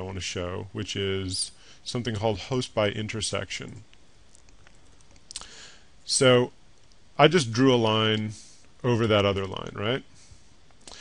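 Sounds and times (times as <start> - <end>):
room hiss: 0.0 - 11.0
soft breath-like hiss: 5.4 - 6.0.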